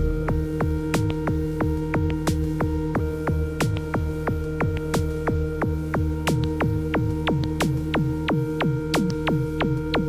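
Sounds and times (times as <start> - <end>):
synth pad drone: 0.0 - 10.0.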